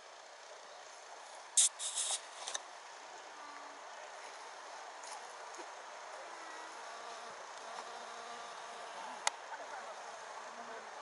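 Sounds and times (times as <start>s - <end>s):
outdoor background: 0.0s - 11.0s
sharp click: 1.6s - 2.6s
flying insect buzzing: 6.4s - 9.3s.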